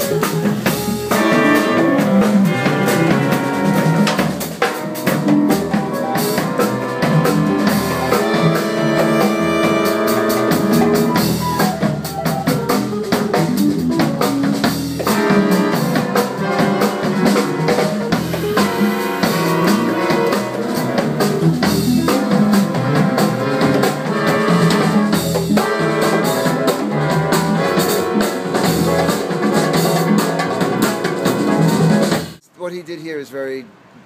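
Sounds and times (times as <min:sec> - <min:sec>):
jazz big band playing: 0:00.0 - 0:32.8
busy drumming: 0:00.0 - 0:33.6.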